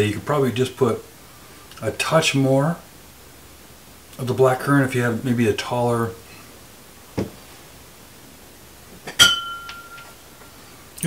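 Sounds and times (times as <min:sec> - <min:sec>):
light glass tap: 0:09.1 - 0:10.1
glass clinking and ringing: 0:09.1 - 0:10.6.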